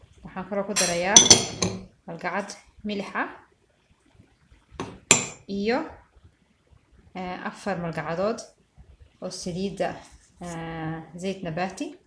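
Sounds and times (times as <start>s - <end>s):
glassware clinking: 0.8s - 1.8s, 4.8s - 5.4s
person talking: 9.2s - 12.0s.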